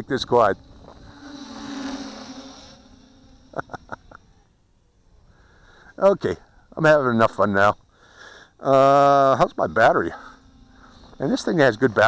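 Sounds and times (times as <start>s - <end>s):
quadcopter propellers buzzing: 0.0s - 12.0s.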